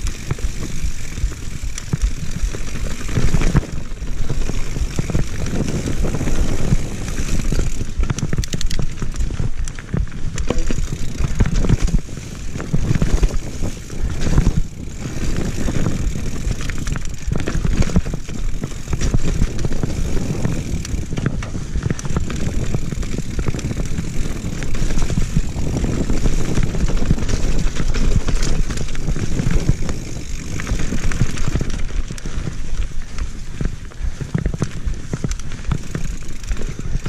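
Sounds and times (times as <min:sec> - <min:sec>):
bike clattering and rattling: 0:00.0 - 0:37.0
tyres rumbling on dirt: 0:00.0 - 0:37.0
wind on microphone: 0:00.0 - 0:37.0.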